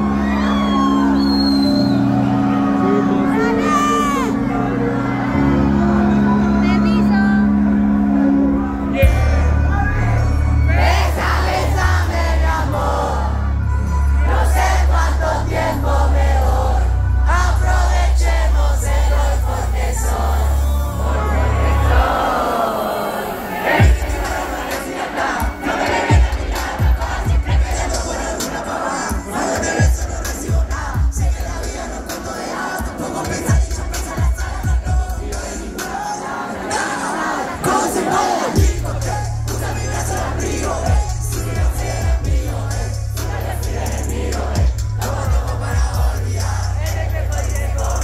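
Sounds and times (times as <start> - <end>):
crowd voices: 0.0 - 48.0
live hip-hop beat: 23.4 - 48.0
deep booming bass-drum hits: 38.6 - 39.8, 40.7 - 48.0.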